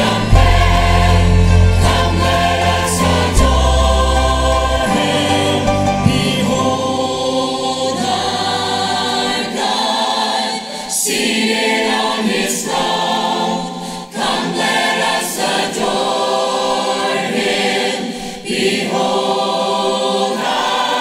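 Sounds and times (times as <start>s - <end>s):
man and woman singing lead: 0.0s - 16.0s
choir singing: 0.0s - 21.0s.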